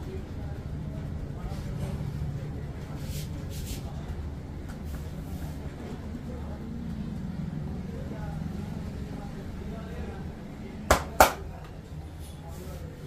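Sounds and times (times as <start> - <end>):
faint background voices: 0.0 - 13.0.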